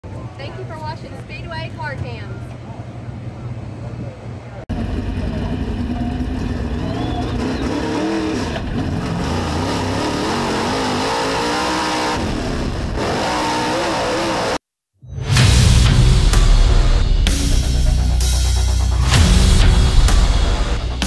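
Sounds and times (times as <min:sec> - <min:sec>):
race car engine revving: 0:04.7 - 0:14.6.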